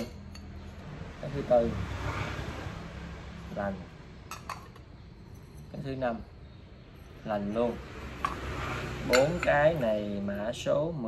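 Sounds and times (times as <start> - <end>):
porcelain plates clinking: 4.3 - 5.8, 8.2 - 10.1.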